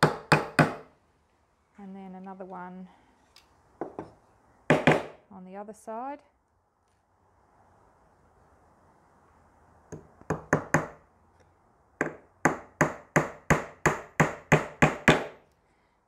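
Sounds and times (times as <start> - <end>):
hammer tapping a nail into wood: 0.0 - 0.8, 4.7 - 5.2, 9.9 - 11.0, 12.0 - 15.4.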